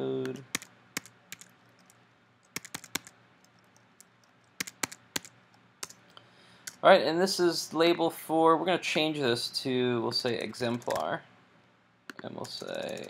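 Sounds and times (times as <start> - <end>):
computer keyboard typing: 0.2 - 6.0, 10.3 - 11.1, 12.4 - 13.0.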